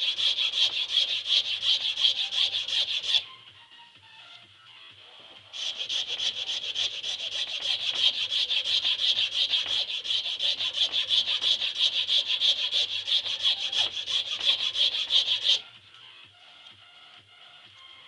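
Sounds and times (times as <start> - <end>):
hand file scraping wood: 0.0 - 3.2, 5.5 - 15.6.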